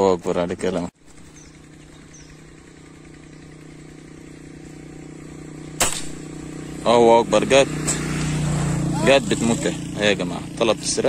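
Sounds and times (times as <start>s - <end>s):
vehicle engine humming: 0.0s - 11.0s
gunshot crack: 5.8s - 6.4s.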